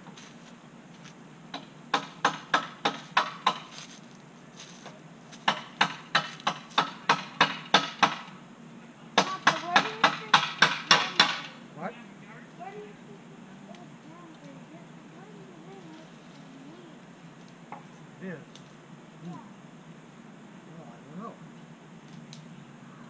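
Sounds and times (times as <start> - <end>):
hammer striking wood: 1.5 - 3.7, 5.4 - 8.3, 9.2 - 11.5.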